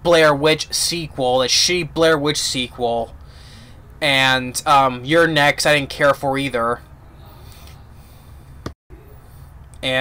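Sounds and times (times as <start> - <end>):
faint room noise: 0.0 - 10.0
man breathing: 3.2 - 3.9, 6.9 - 8.6.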